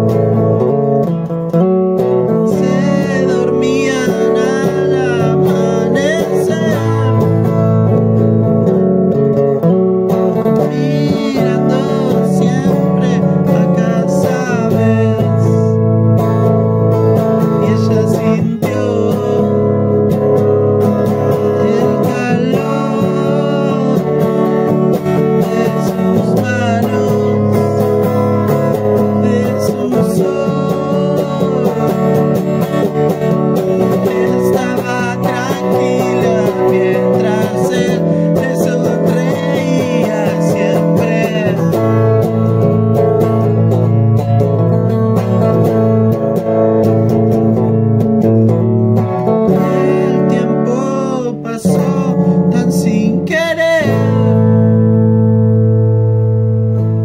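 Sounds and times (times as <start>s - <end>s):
acoustic guitar song cover: 0.0s - 57.0s.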